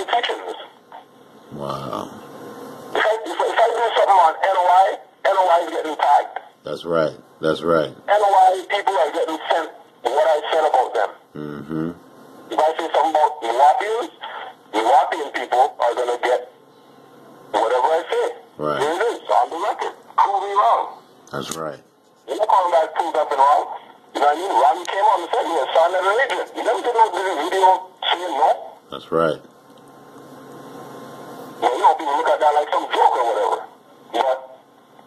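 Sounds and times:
person talking: 1.5s - 2.2s, 3.0s - 16.5s, 17.5s - 29.5s, 31.6s - 34.6s.

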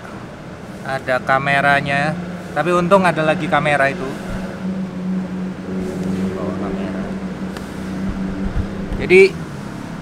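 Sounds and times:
low motor hum: 3.5s - 10.0s.

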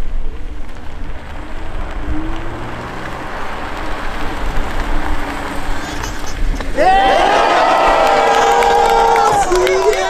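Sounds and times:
car engine humming softly: 0.0s - 10.0s
outdoor background rush: 0.0s - 10.0s.

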